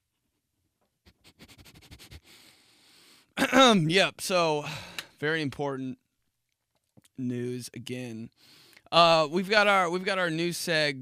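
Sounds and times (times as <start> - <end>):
man breathing and sniffing: 1.0 - 3.4, 8.4 - 8.9.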